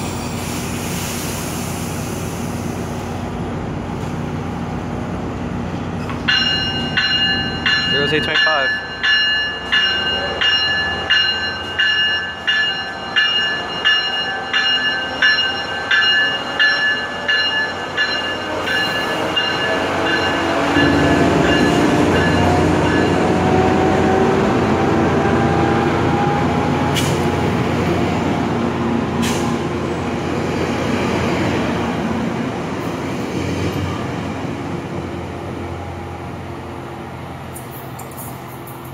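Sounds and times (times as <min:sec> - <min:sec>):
train wheels rolling past: 0:00.0 - 0:36.4
locomotive bell ringing: 0:06.2 - 0:23.8.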